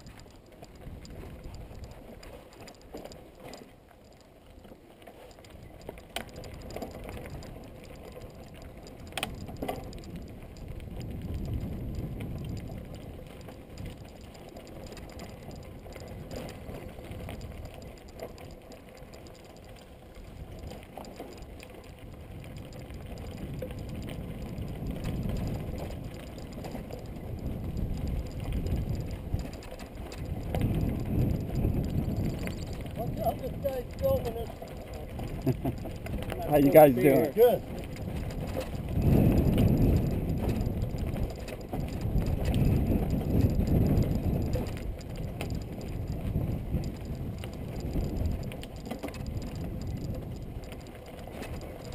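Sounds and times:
bike tyres rumbling on dirt: 5.4s - 51.9s.

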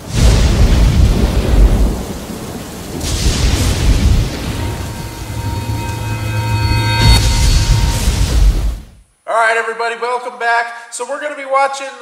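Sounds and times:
rain-like storm hiss: 0.0s - 9.3s.

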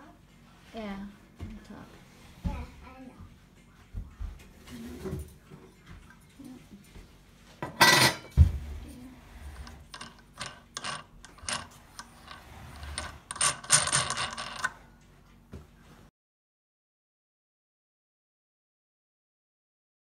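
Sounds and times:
metal scraping: 7.6s - 14.8s
metal clicks and rattles: 9.6s - 14.8s.

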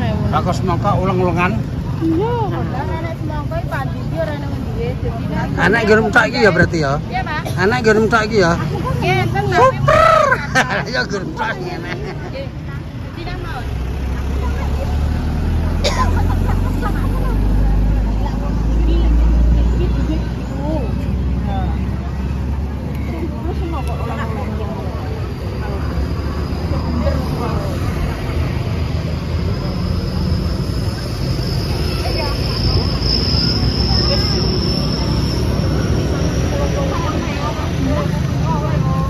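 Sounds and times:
market crowd chatter: 0.0s - 39.0s
vehicle engine rumble: 0.0s - 39.0s.

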